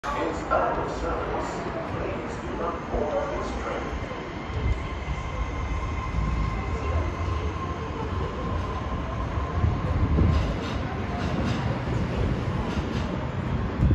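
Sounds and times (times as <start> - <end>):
train wheels rumbling on rails: 0.0 - 13.9.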